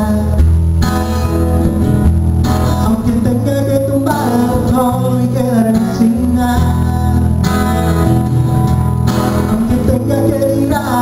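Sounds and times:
man singing into a microphone: 0:00.0 - 0:00.6, 0:02.7 - 0:07.6, 0:09.4 - 0:11.0
acoustic guitar strumming: 0:00.0 - 0:11.0.

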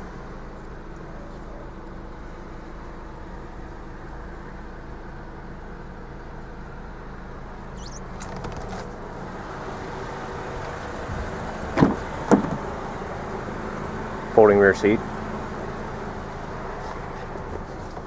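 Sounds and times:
low hum in car cabin: 0:00.0 - 0:18.0
car door clunks: 0:08.0 - 0:08.9, 0:11.7 - 0:12.7.

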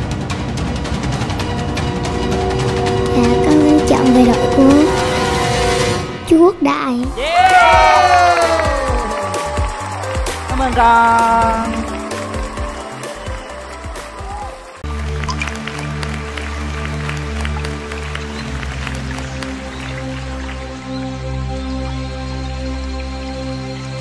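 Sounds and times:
music cue: 0:01.1 - 0:16.0
audience applauding and cheering: 0:07.1 - 0:21.4
soft slow instrumental intro: 0:07.3 - 0:24.0.

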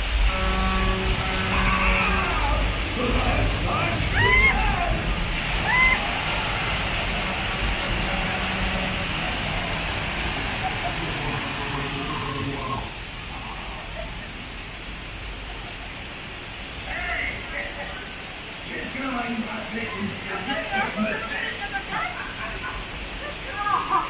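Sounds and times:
water gushing and splashing: 0:00.0 - 0:24.0.

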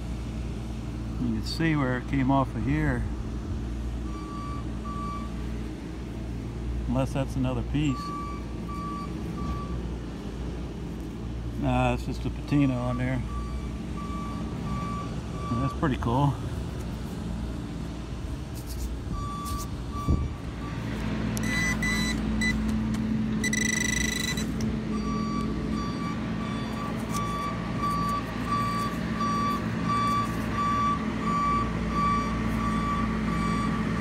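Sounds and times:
loader engine running: 0:00.0 - 0:34.0
reversing alarm beeping: 0:04.0 - 0:05.4, 0:07.8 - 0:09.8, 0:12.6 - 0:15.8, 0:19.1 - 0:20.8, 0:21.4 - 0:22.7, 0:23.4 - 0:34.0.

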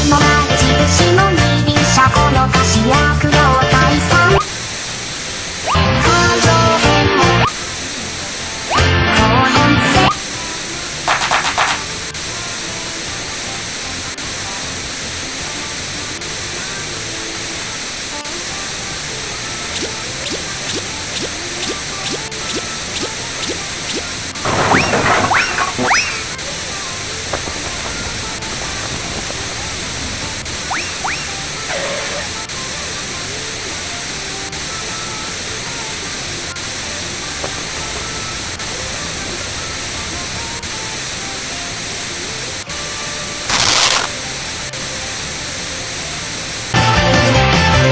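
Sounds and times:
steady hiss-like noise: 0:04.4 - 0:08.7, 0:10.2 - 0:24.8, 0:26.1 - 0:46.8.

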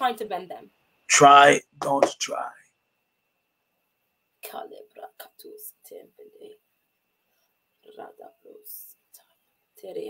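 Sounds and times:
people talking: 0:00.0 - 0:02.6, 0:04.4 - 0:06.6, 0:07.9 - 0:09.0, 0:09.8 - 0:10.0.

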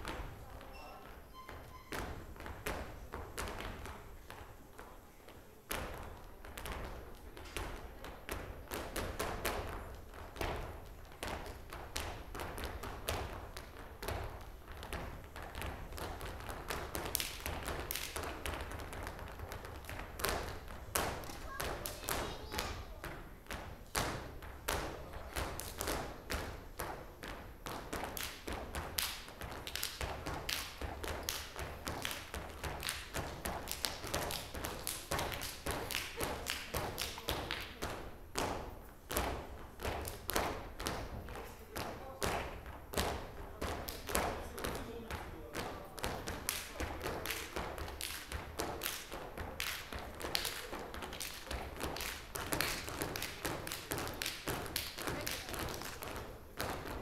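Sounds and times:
shoes stamping on stage floor: 0:05.7 - 0:57.0.

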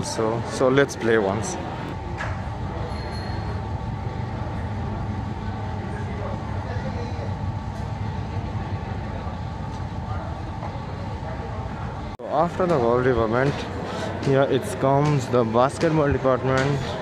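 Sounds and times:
indoor store hum and hiss: 0:00.0 - 0:17.0.

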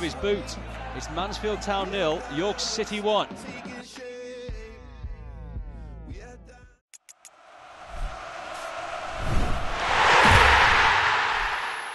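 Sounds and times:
rising swell of noise: 0:09.0 - 0:11.9
low thumps: 0:09.1 - 0:11.9.

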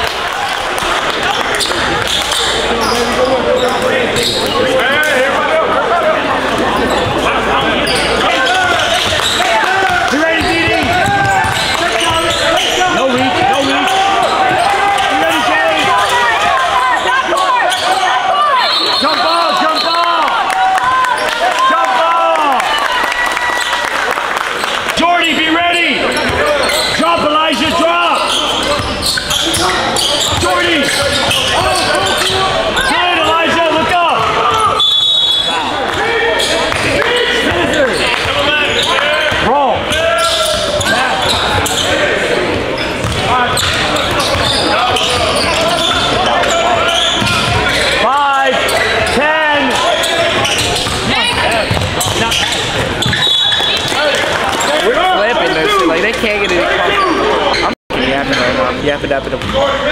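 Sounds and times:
players' voices: 0:00.0 - 0:59.9
sneakers squeaking: 0:00.5 - 0:05.4, 0:06.1 - 0:20.1, 0:25.7 - 0:58.6
basketball bouncing: 0:08.8 - 0:13.6, 0:42.5 - 0:47.9, 0:50.1 - 0:54.7.

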